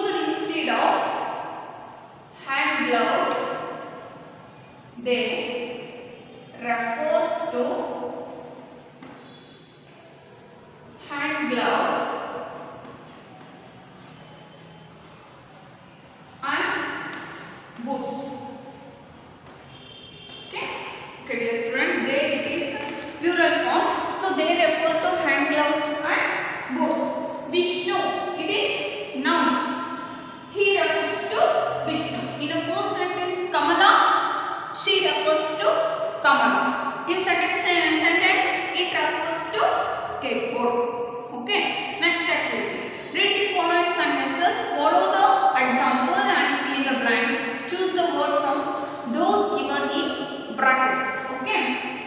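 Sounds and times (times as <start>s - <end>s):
woman talking: 0.0s - 1.2s, 2.4s - 3.8s, 5.0s - 5.9s, 6.5s - 8.3s, 11.0s - 12.5s, 16.4s - 18.6s, 20.5s - 29.7s, 30.6s - 34.1s, 34.8s - 51.8s
woman's voice in reverberant room: 0.0s - 14.2s, 16.3s - 19.7s, 20.4s - 52.0s.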